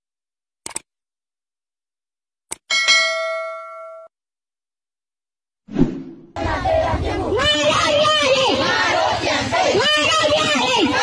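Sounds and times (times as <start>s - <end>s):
bright bell ding: 2.7s - 4.1s.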